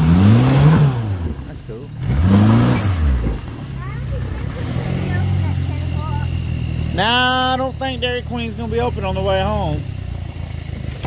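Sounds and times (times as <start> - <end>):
jet boat motor revving: 0.0 - 11.0.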